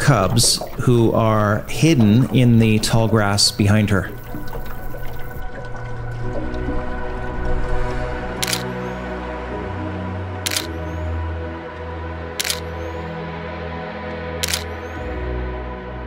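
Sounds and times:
background music sustained tones: 0:00.0 - 0:16.0
camera shutter clicking: 0:08.4 - 0:08.7, 0:10.5 - 0:10.7, 0:12.4 - 0:12.7, 0:14.4 - 0:14.7.

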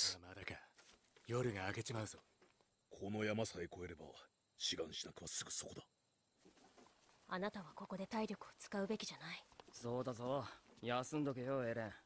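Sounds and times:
man speaking: 0:00.0 - 0:00.7, 0:01.3 - 0:02.2, 0:02.9 - 0:05.9, 0:09.8 - 0:12.0.

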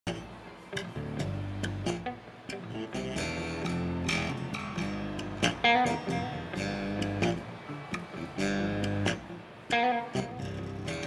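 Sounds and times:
bass guitar through amplifier: 0:00.1 - 0:11.0
electric guitar: 0:00.1 - 0:11.0.

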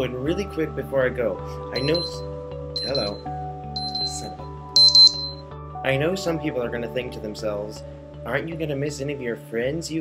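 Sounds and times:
background music with held notes: 0:00.0 - 0:10.0
high-pitched electronic chime: 0:01.8 - 0:02.2, 0:02.8 - 0:03.2, 0:03.8 - 0:05.4.

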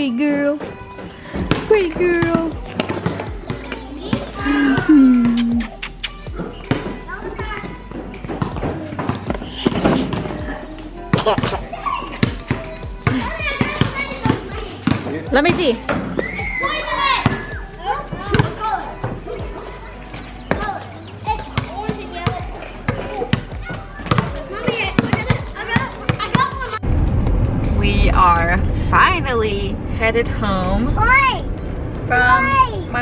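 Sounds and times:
ball bouncing on concrete: 0:00.6 - 0:10.4, 0:11.1 - 0:16.3, 0:17.2 - 0:17.5, 0:18.1 - 0:19.6, 0:20.2 - 0:26.6
children shouting and talking: 0:00.6 - 0:26.9, 0:30.9 - 0:33.0.

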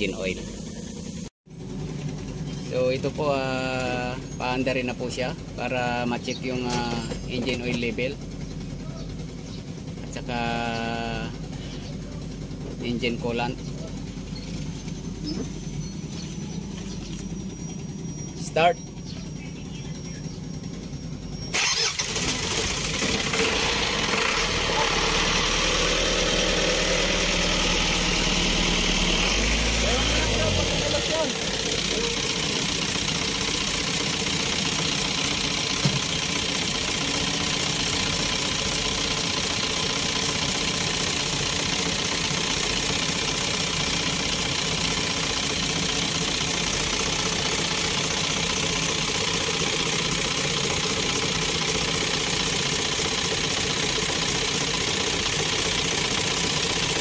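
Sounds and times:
diesel engine cranking: 0:00.0 - 0:57.0
diesel engine idling: 0:00.0 - 0:57.0.

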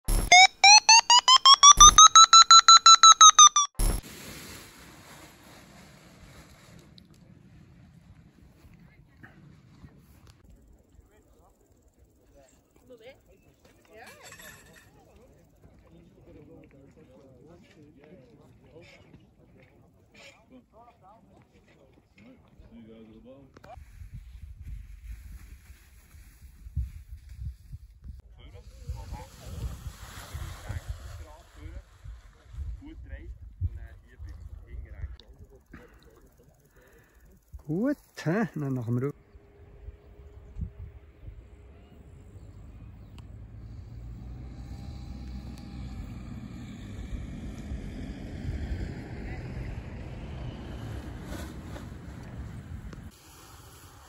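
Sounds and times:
fast electronic beeps rising in pitch: 0:00.1 - 0:04.0.

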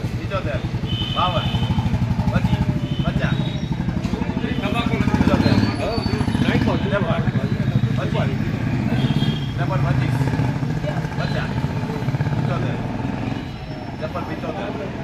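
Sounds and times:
men talking: 0:00.0 - 0:15.0.

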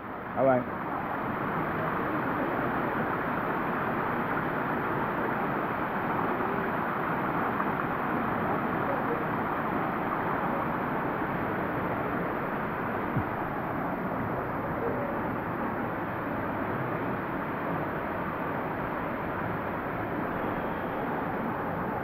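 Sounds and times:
water running over rocks: 0:00.1 - 0:22.0.

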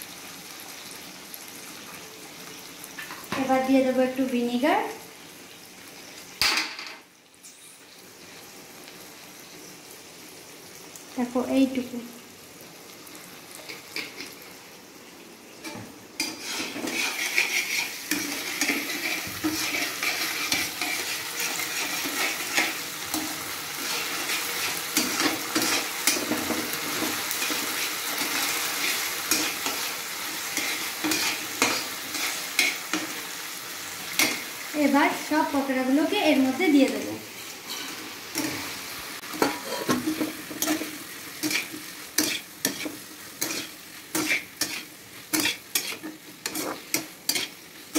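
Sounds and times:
vegetables sizzling in a wok: 0:00.0 - 0:47.9
spoon scraping a pan: 0:13.6 - 0:14.4, 0:15.6 - 0:33.2, 0:37.3 - 0:47.9.

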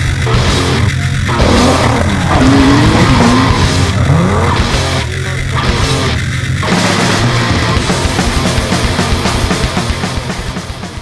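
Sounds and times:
car engine revving: 0:00.0 - 0:10.2
rock music: 0:00.0 - 0:11.0.

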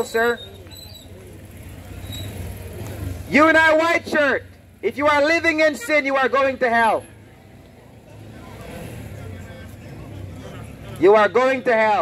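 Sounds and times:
faint distant voices: 0:00.0 - 0:12.0
low street rumble: 0:00.0 - 0:12.0.

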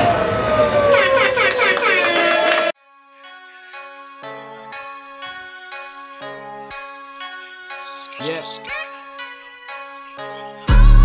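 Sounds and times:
hip-hop club music: 0:10.6 - 0:11.0.

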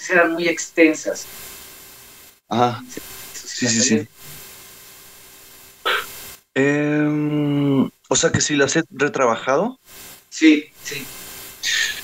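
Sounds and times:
line hiss: 0:00.0 - 0:06.8, 0:09.2 - 0:12.0.

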